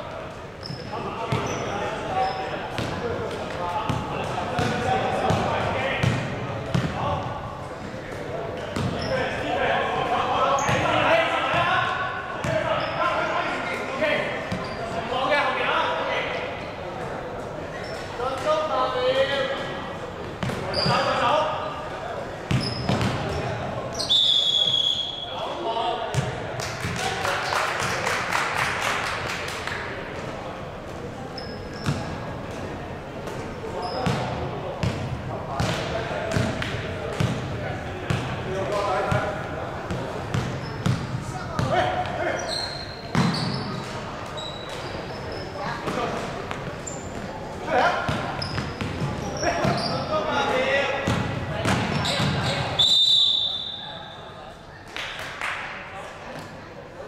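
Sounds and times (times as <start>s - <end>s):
players' voices echoing: 0.0s - 57.0s
sneakers squeaking: 0.4s - 9.6s, 10.4s - 11.7s, 12.4s - 15.1s, 17.7s - 18.6s, 19.5s - 25.5s, 31.0s - 50.3s, 50.9s - 54.9s.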